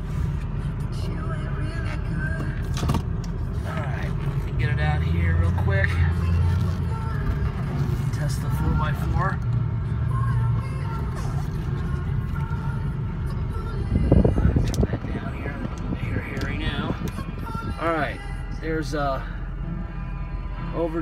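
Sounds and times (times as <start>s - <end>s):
car radio voices and music: 0.0s - 21.0s
diesel truck engine rumble: 0.0s - 21.0s.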